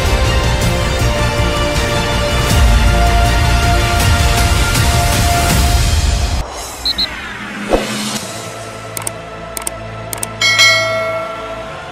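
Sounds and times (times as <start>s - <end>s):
sharp clicks: 9.0s - 10.4s.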